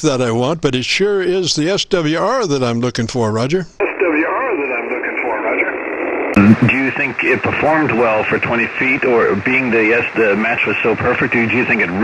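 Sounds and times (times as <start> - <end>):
man's voice over shortwave radio: 3.8 - 5.8, 6.4 - 12.0
person speaking close to microphone: 6.4 - 12.0.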